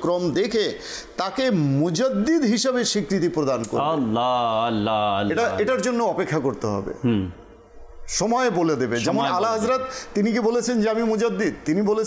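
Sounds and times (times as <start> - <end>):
man speaking: 0.0 - 7.4, 8.1 - 12.0.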